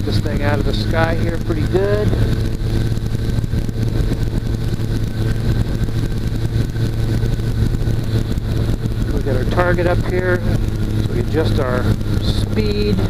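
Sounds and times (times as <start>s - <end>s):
aircraft engine droning: 0.0s - 13.0s
wind rushing over microphone: 0.0s - 13.0s.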